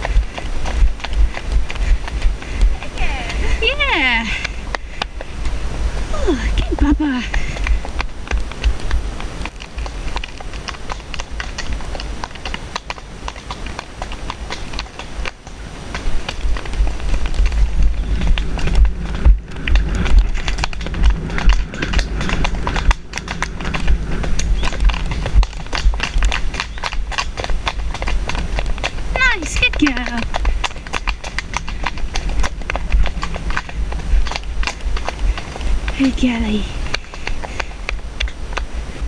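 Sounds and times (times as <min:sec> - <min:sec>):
horse hoofbeats on dirt: 0:00.0 - 0:39.0
wind rumble on microphone: 0:00.0 - 0:39.0.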